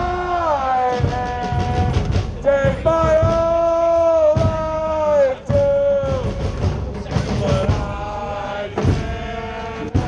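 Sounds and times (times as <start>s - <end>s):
crowd chanting in long notes: 0.0s - 10.0s.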